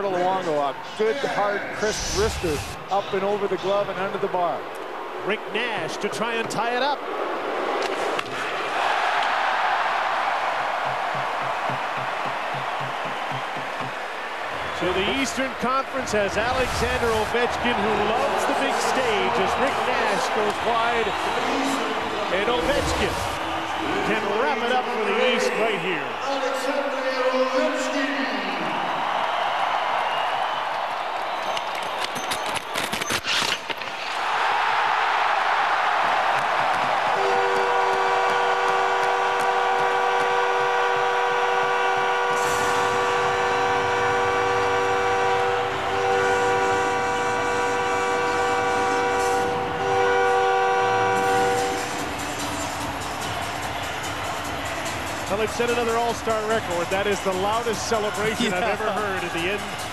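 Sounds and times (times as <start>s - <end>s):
crowd cheering: 0.0s - 59.9s
goal horn blaring: 37.1s - 56.6s.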